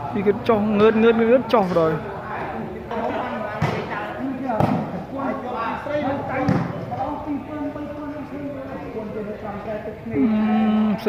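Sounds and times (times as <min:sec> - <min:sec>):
volleyball hits: 0:03.5 - 0:05.0, 0:06.3 - 0:07.0.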